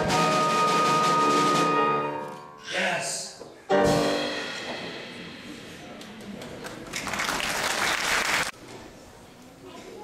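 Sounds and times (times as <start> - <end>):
audience applauding: 6.0 - 8.6.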